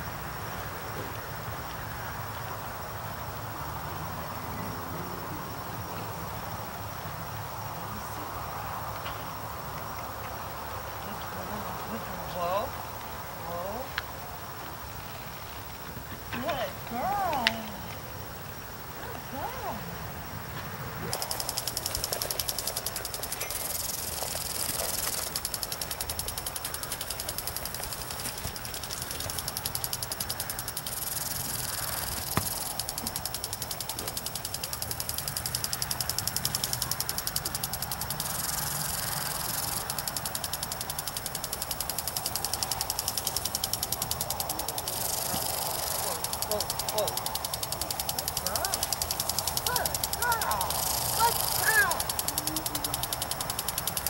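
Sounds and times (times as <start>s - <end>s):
sprinkler rapid ticking: 5.9s - 19.8s, 21.0s - 54.0s.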